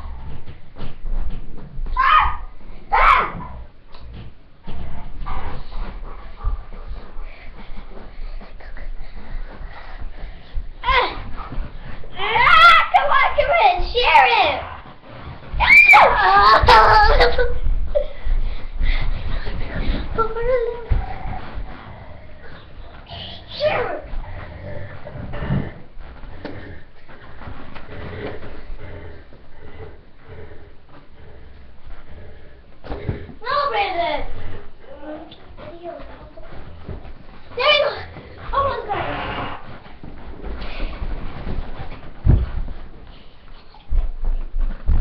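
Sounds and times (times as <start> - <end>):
bumps knocks and shuffling: 0.0 - 45.0
dog whimpering and panting: 4.7 - 12.7, 15.6 - 29.0, 33.7 - 42.1, 43.5 - 45.0.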